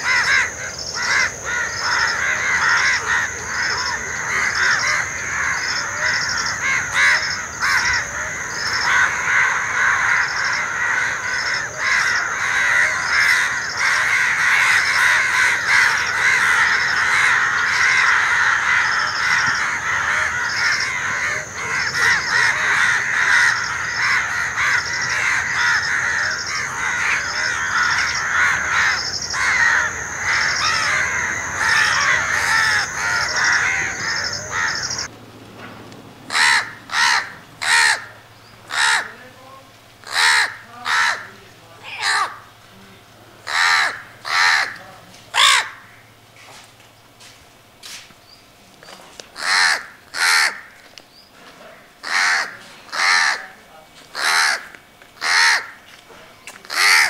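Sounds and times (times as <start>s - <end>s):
chorus of crows calling: 0.0s - 35.1s, 36.2s - 48.0s, 48.8s - 57.0s
loud crow caws: 0.0s - 35.1s, 36.3s - 39.3s, 40.0s - 42.6s, 43.4s - 46.2s, 49.3s - 57.0s
steady high whine: 0.0s - 57.0s.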